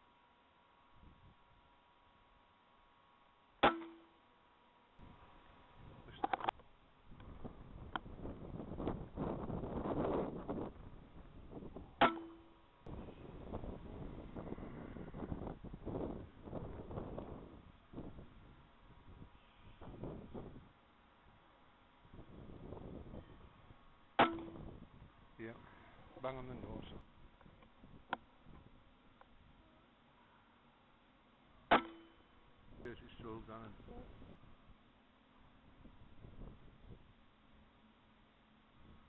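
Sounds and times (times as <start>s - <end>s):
wind buffeting microphone: 7.1s - 12.0s, 12.8s - 20.7s, 22.0s - 23.8s, 24.4s - 28.8s, 35.8s - 37.1s.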